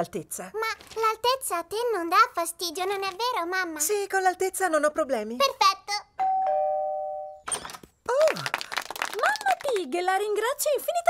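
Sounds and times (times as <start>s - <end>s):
two-tone doorbell chime: 6.2s - 7.4s.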